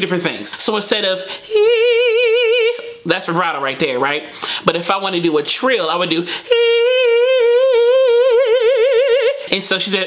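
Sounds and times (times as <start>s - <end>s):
man singing a vocal trill: 0.0s - 10.0s.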